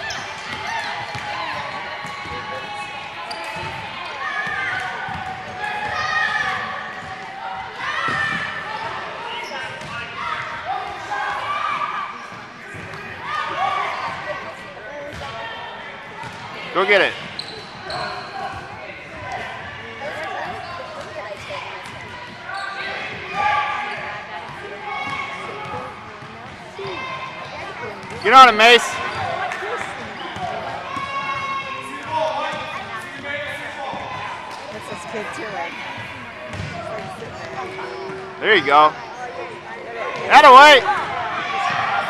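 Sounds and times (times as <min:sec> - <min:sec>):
voices chattering in a gym: 0:00.0 - 0:42.0
basketball bouncing on court: 0:00.1 - 0:02.5, 0:03.3 - 0:07.4, 0:27.8 - 0:28.2, 0:36.0 - 0:38.3.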